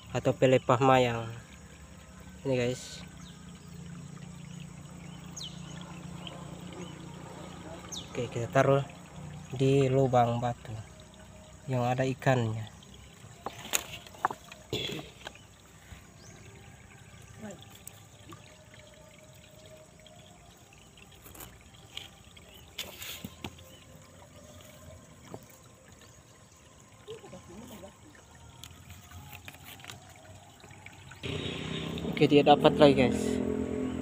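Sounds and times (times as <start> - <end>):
stream trickling over rocks: 0.0 - 34.0.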